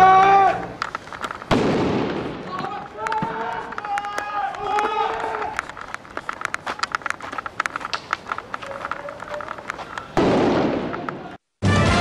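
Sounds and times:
firework crackling: 0.0 - 12.0
loud firework bang: 1.5 - 2.7, 10.2 - 12.0.

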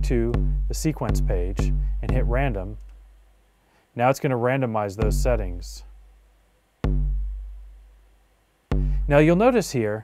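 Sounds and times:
kick drum booming: 0.0 - 2.6, 5.0 - 5.4, 6.8 - 7.8, 8.7 - 9.5.

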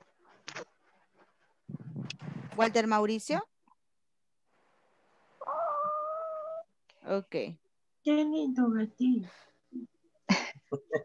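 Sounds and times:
cat meowing: 5.4 - 6.7.

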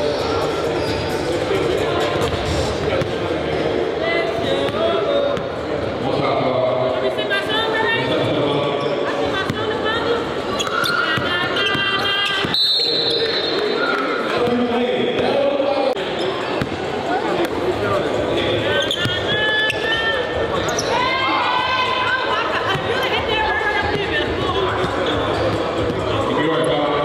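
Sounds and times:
people talking: 0.0 - 12.6, 13.2 - 27.0.

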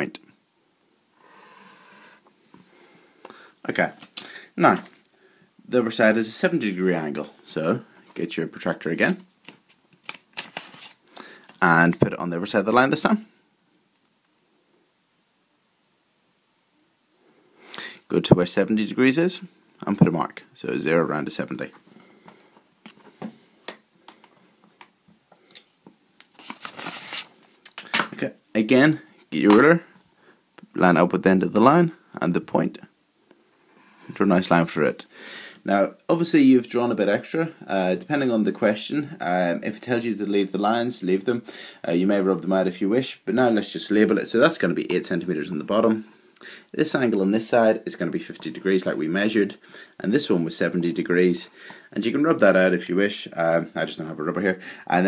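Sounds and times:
ruler rustling: 25.5 - 28.1.

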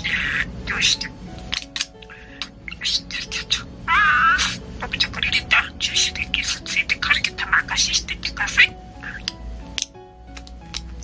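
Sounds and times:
budgerigar chattering: 0.0 - 11.0.

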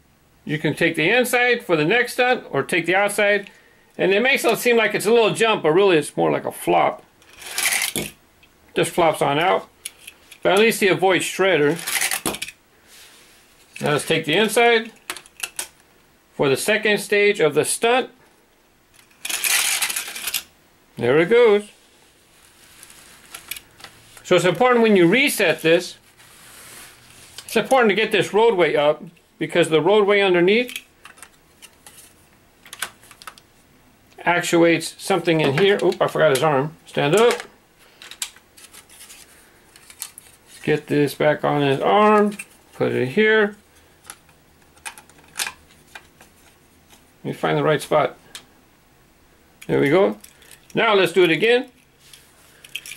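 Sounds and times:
toy car rattling down plastic track: 7.3 - 8.1, 19.2 - 20.4.

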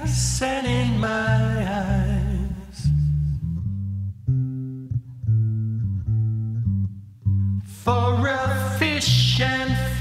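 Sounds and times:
electric bass guitar plucking: 0.0 - 10.0.

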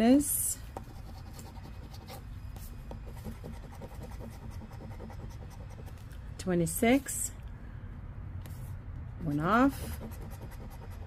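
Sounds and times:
coin scratching lottery ticket: 9.3 - 11.0.

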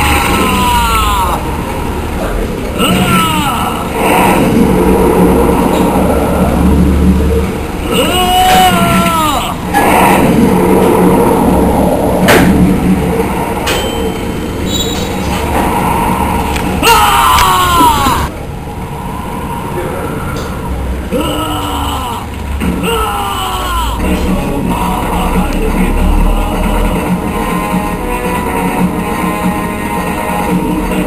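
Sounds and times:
low rumble: 0.0 - 31.0
noisy background: 0.0 - 31.0.

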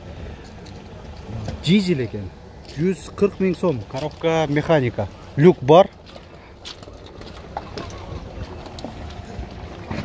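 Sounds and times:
footsteps crunching on gravel: 2.6 - 10.0.

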